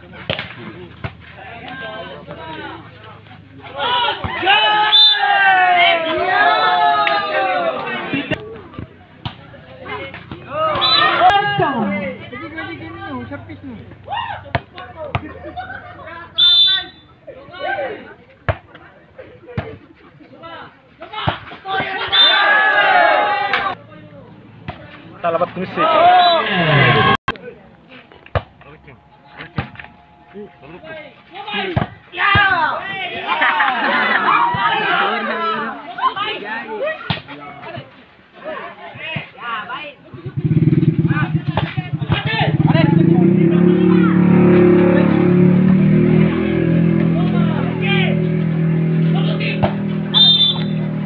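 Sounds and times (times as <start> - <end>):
voices calling out: 0.0 - 51.0.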